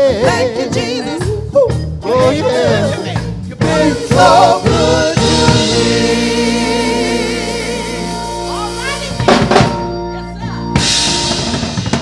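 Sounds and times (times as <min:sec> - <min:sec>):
gospel group singing: 0:00.0 - 0:09.8
sustained keyboard accompaniment: 0:00.0 - 0:12.0.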